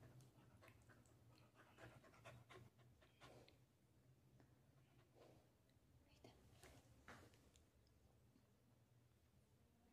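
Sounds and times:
dog panting: 0.0 - 3.6.

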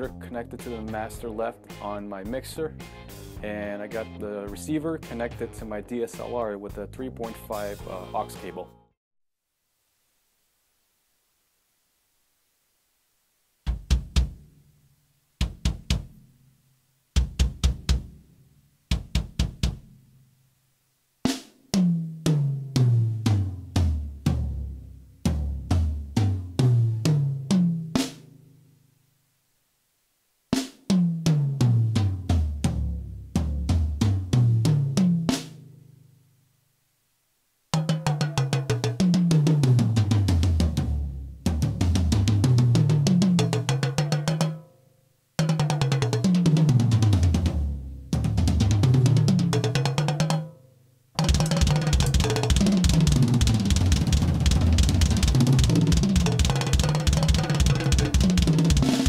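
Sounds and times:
drum fills on toms: 13.6 - 14.6, 15.4 - 16.3, 17.1 - 18.3, 18.9 - 20.0, 21.3 - 28.2, 30.6 - 35.6, 37.8 - 44.7, 45.4 - 50.6, 51.2 - 59.0.

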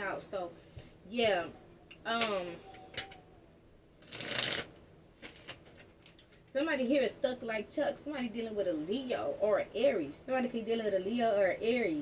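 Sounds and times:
cards being shuffled: 4.0 - 6.2.

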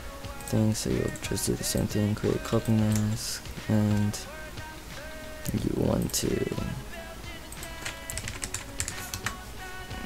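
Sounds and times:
quiet background music: 0.0 - 10.0
keyboard keys clicking: 7.6 - 9.4.

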